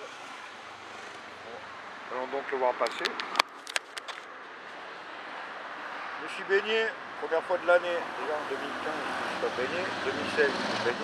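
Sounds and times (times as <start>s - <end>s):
distant motor vehicle running: 8.1s - 11.0s.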